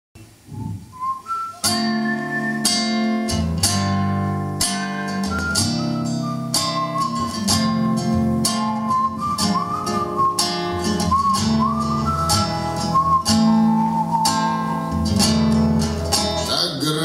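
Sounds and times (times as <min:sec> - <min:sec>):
sliding guitar melody: 0:00.6 - 0:17.0
strummed acoustic guitar chords: 0:01.0 - 0:17.0.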